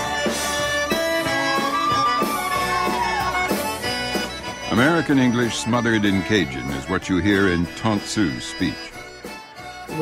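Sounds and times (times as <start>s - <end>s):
live band with accordion: 0.0s - 10.0s.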